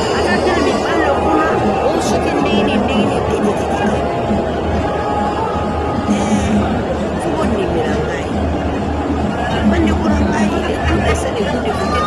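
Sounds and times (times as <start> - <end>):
music with pulsing bass beat: 0.0 - 12.0
voices chattering: 0.0 - 12.0.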